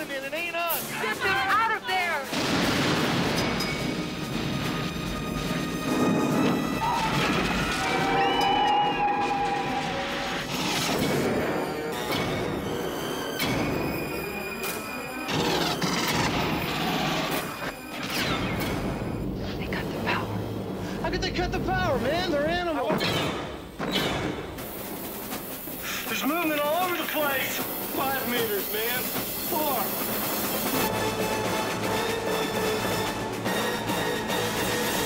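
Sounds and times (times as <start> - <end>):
trailer music: 0.7 - 26.8, 30.1 - 35.0
gunfire: 2.3 - 3.8
explosions: 2.3 - 7.8.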